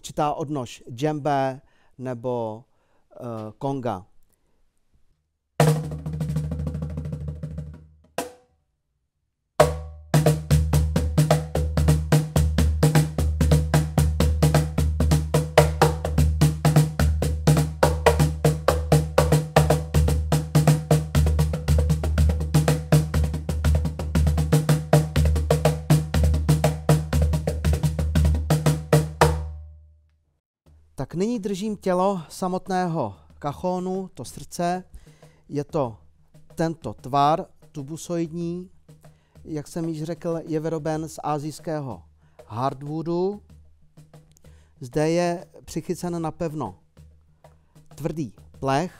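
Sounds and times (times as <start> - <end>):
hand drumming: 5.6 - 8.4, 9.6 - 29.6, 41.6 - 45.4, 46.7 - 48.9.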